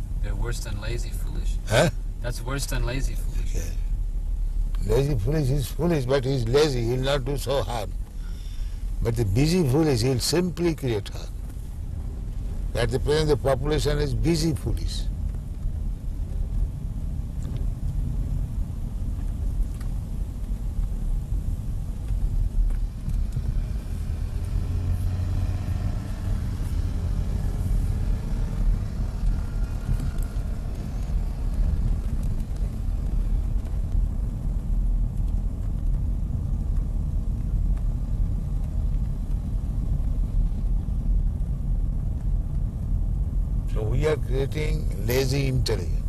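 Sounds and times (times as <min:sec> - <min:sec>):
car engine and road noise: 0:00.0 - 0:46.0.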